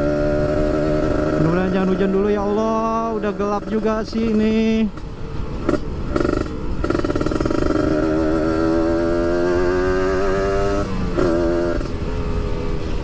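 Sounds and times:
motorcycle engine accelerating: 0.0 - 13.0.

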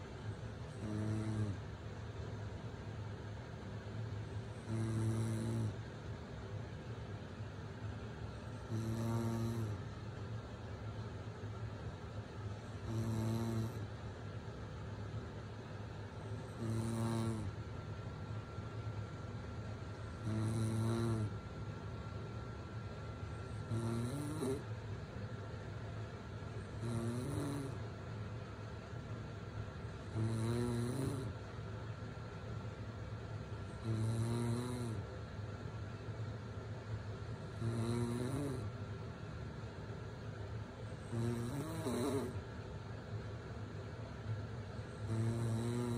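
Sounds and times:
woman snoring: 0.8 - 1.6, 4.6 - 5.8, 8.7 - 9.8, 12.8 - 13.8, 16.5 - 17.6, 20.2 - 21.3, 23.7 - 24.6, 26.8 - 27.8, 30.1 - 31.3, 33.8 - 35.0, 37.6 - 38.7, 41.0 - 42.4, 45.0 - 45.9.

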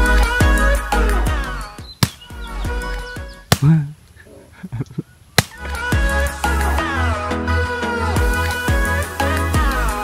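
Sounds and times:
background pop music: 0.0 - 3.6, 5.5 - 10.0
sharp cracks: 2.0 - 2.4, 3.4 - 4.2, 5.4 - 5.8.

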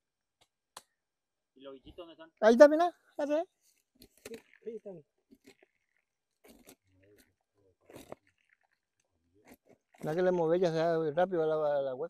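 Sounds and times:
blade crunching termite nest: 4.0 - 10.5.

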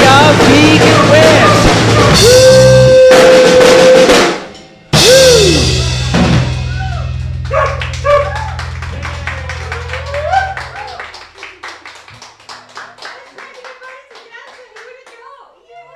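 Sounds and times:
rock band final chord: 0.0 - 11.8
people whooping: 2.0 - 4.4, 5.0 - 12.0
people clapping: 7.3 - 15.6.

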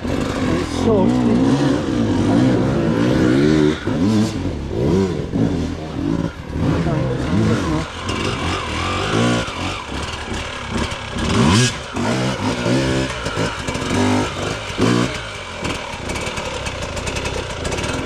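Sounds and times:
dirt bike engine revving: 0.0 - 18.0.

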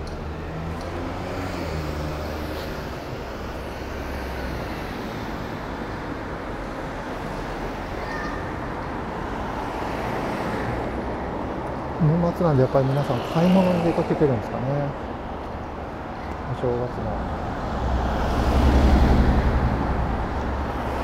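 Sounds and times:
cars driving past: 0.0 - 21.0
minivan passing: 8.5 - 21.0.

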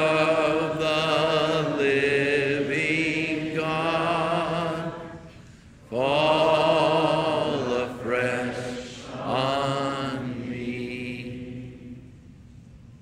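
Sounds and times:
congregation singing a slow hymn: 0.0 - 12.6.

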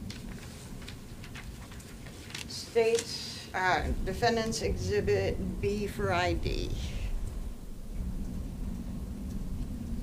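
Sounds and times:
faint hum: 0.0 - 10.0
low room rumble: 0.0 - 10.0.

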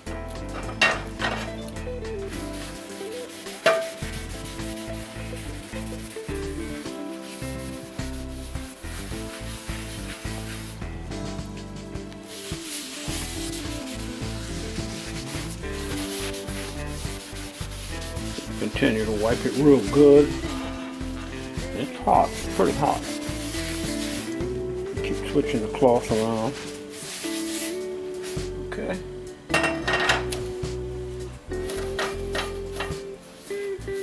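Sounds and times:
cloth rubbing on cast iron skillet: 0.3 - 34.0.

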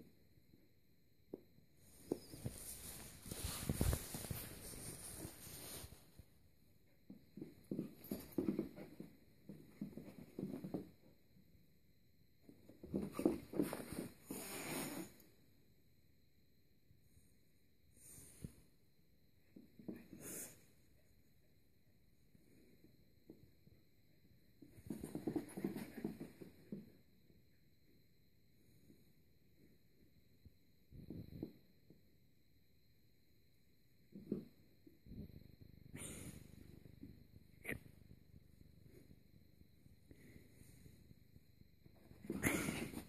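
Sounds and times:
soft thumps and scuffles: 1.9 - 6.2, 7.0 - 11.0
scuffling on carpet: 2.1 - 6.2.

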